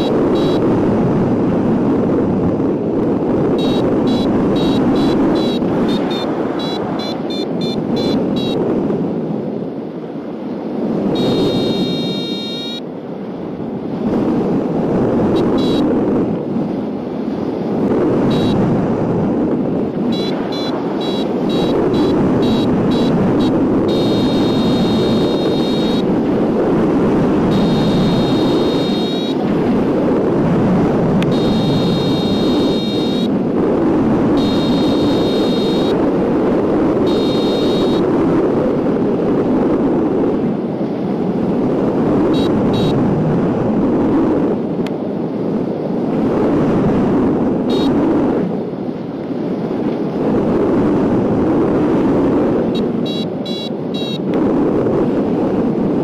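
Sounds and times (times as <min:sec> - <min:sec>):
variometer beeping: 0:00.0 - 0:00.8, 0:03.4 - 0:08.7, 0:11.1 - 0:12.8, 0:15.3 - 0:16.0, 0:18.2 - 0:18.7, 0:20.0 - 0:26.3, 0:26.9 - 0:29.9, 0:31.2 - 0:33.3, 0:34.3 - 0:36.1, 0:36.9 - 0:38.1, 0:42.3 - 0:43.0, 0:47.7 - 0:48.0, 0:52.7 - 0:54.4
wind rushing over microphone: 0:00.0 - 0:56.0.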